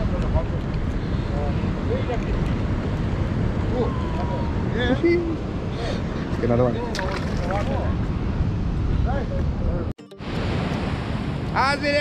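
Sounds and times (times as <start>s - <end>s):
surf at shore: 0.0s - 12.0s
wind buffeting microphone: 0.0s - 12.0s.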